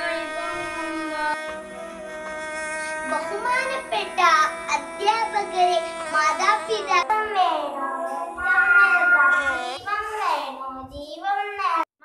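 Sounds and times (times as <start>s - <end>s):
background music: 0.0s - 10.7s
young girl singing: 3.1s - 11.7s.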